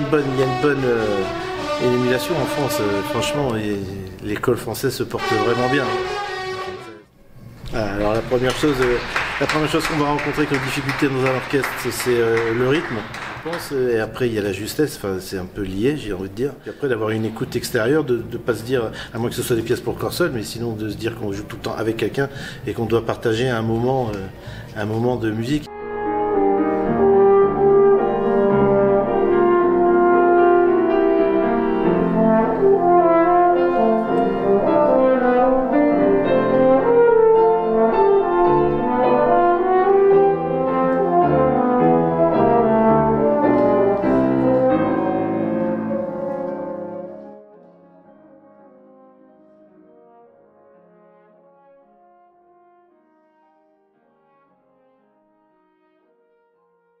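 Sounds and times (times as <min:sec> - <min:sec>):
french horn playing: 0:00.0 - 0:04.2, 0:05.0 - 0:07.2, 0:08.4 - 0:13.8, 0:25.6 - 0:57.0
grand piano accompaniment: 0:00.0 - 0:57.0.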